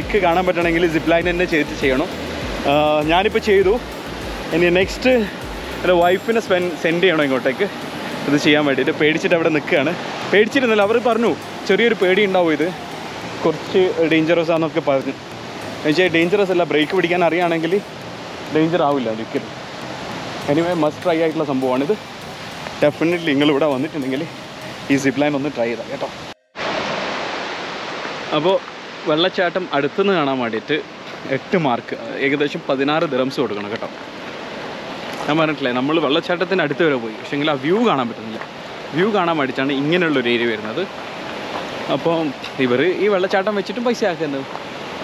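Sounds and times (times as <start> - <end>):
man talking: 0.0 - 3.9, 4.5 - 15.2, 15.8 - 17.9, 18.5 - 19.5, 20.4 - 22.0, 22.8 - 26.2
water rushing: 0.0 - 45.0.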